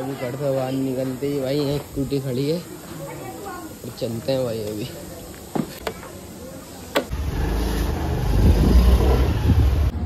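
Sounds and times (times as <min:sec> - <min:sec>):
scooter engine starting and running: 0:06.9 - 0:10.0.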